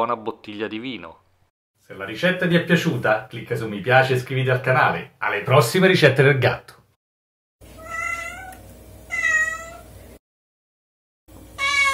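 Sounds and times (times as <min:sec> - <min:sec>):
cat meowing: 0:07.8 - 0:09.9, 0:11.5 - 0:11.9.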